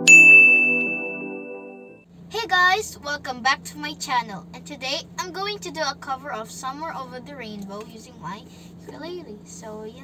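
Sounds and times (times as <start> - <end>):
bright chime ding: 0.0 - 2.0
synthesizer pad chords: 0.0 - 2.0.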